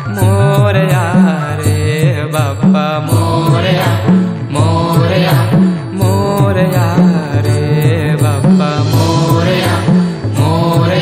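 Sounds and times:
devotional song with steady beat: 0.0s - 11.0s.

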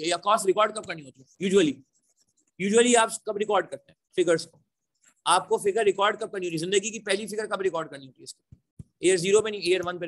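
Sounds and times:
man speaking: 0.0s - 4.6s, 5.2s - 10.0s.

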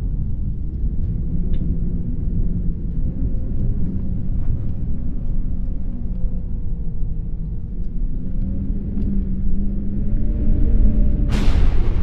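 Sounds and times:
deep steady rumble: 0.0s - 12.0s.

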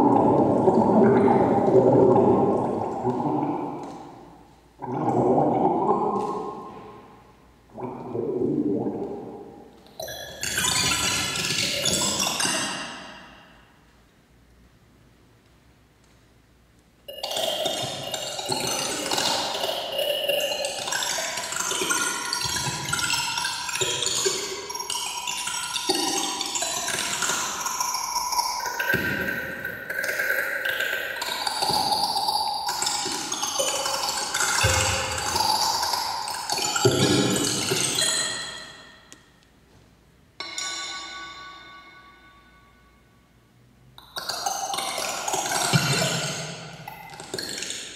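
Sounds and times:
electronic sound-art music: 17.1s - 39.1s
ringing ping: 40.4s - 43.0s.

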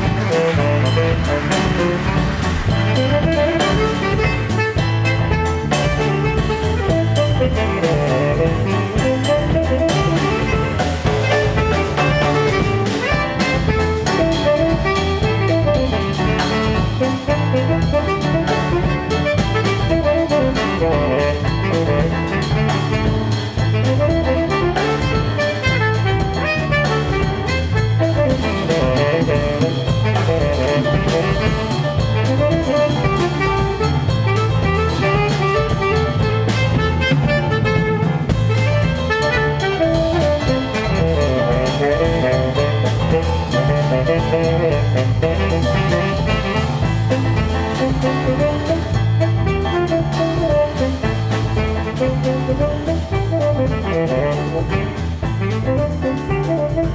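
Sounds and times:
bass guitar: 0.0s - 56.9s
drum kit samba groove: 0.0s - 56.9s
piano: 0.0s - 56.9s
tenor saxophone solo: 0.0s - 56.9s.

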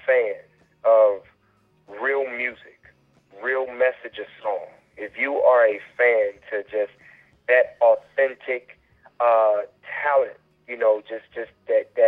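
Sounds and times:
man talking over telephone: 0.0s - 1.3s, 1.9s - 12.0s.

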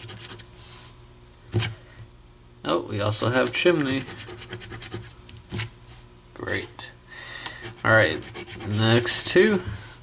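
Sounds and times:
coin scratching lottery ticket: 7.7s - 9.2s.

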